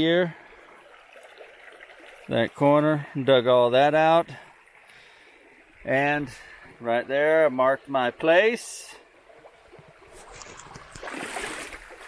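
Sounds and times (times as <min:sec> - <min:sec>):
creek water running over stones: 0:00.0 - 0:12.0.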